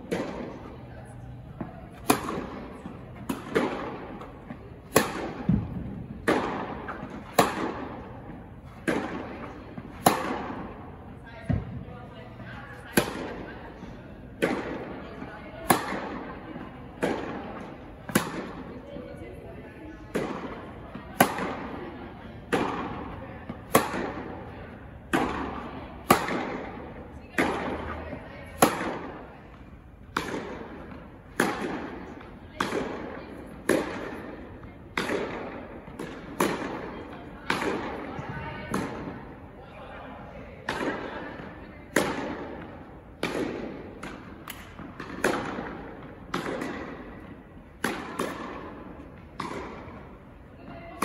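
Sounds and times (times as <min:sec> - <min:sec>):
tennis ball hit by rackets: 0:00.0 - 0:00.7, 0:01.6 - 0:11.8, 0:12.7 - 0:13.5, 0:14.4 - 0:18.7, 0:19.9 - 0:39.2, 0:40.6 - 0:51.0.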